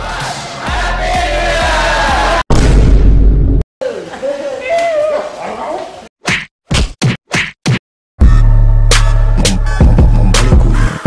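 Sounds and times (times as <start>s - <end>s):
party shout: 0.0s - 2.4s
bass-heavy music: 0.0s - 3.6s, 8.2s - 11.0s.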